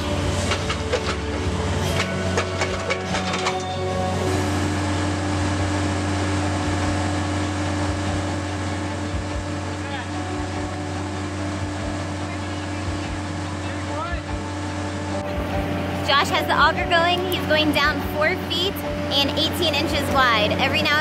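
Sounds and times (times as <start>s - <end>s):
loader engine running: 0.0s - 21.0s.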